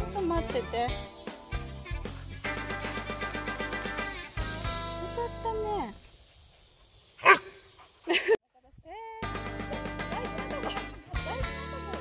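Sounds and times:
background music: 0.0 - 5.9, 9.2 - 12.0
dog barking: 7.2 - 7.6.

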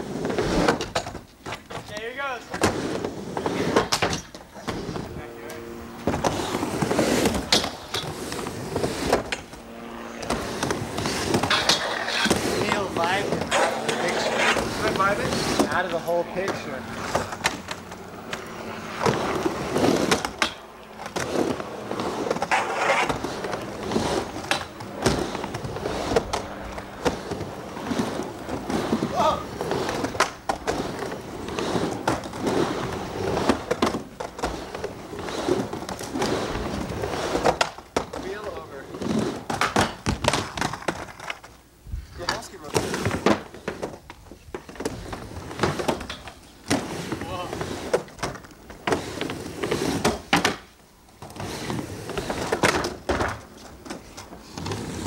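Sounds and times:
skateboards clacking on coping: 0.0 - 9.6, 10.2 - 41.6, 42.2 - 55.0
skateboard wheels rolling on ramp: 0.0 - 55.0.

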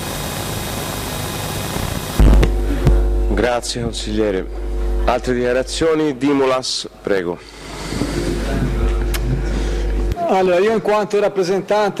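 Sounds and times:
microphone system hiss: 0.0 - 11.9
loud low electrical hum: 0.0 - 12.0
microphone switch click: 2.2 - 4.0, 8.8 - 10.2.

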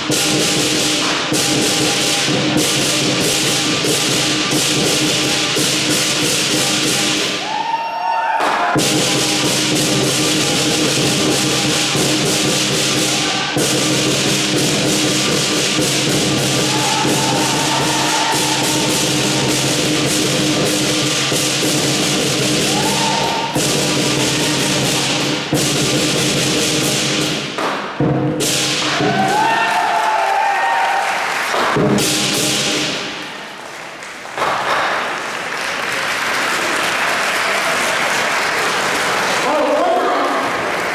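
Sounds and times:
clashing cymbals: 0.0 - 7.4, 8.8 - 29.5, 31.6 - 33.4
large drum: 0.0 - 7.4, 8.4 - 29.7, 31.5 - 33.2.

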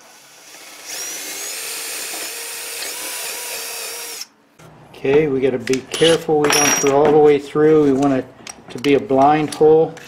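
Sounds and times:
power drill whining: 0.2 - 4.3.

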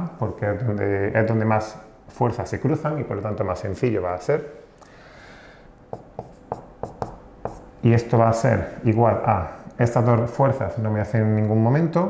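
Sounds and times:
marker writing on whiteboard: 5.9 - 7.8.

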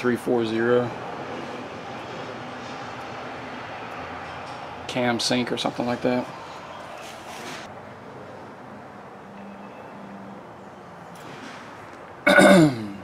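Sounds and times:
man clearing his throat: 12.2 - 13.0.

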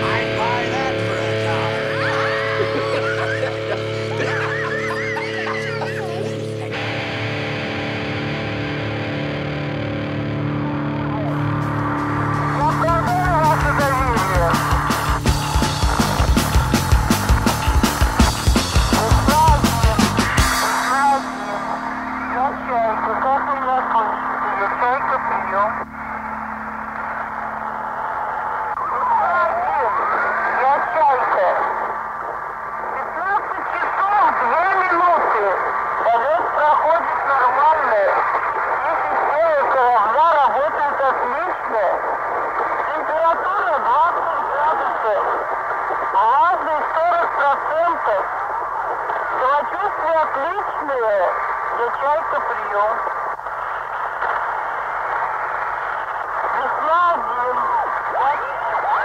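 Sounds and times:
muffled radio voices: 0.0 - 9.0, 10.3 - 59.0.

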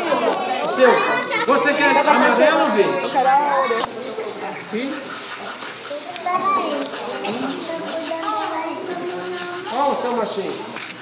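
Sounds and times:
chatter of voices: 0.0 - 11.0
children's voices: 0.0 - 11.0.

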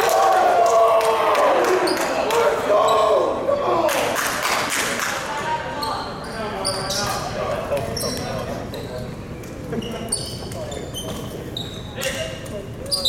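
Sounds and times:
players' voices: 0.0 - 13.0
sneaker squeaks on hardwood floor: 7.9 - 9.1, 9.7 - 13.0.

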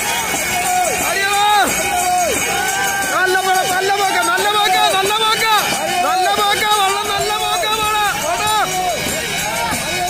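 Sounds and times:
men chanting and shouting: 0.0 - 10.0.

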